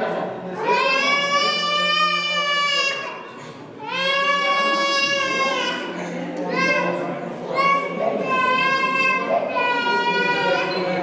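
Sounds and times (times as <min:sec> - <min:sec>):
baby crying: 0:00.7 - 0:06.0.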